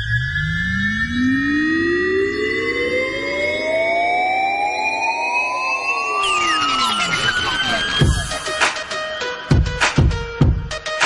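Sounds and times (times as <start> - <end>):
high synth tones bending: 0.0 - 9.0
synthesizer riser sweeping upward: 0.0 - 9.0.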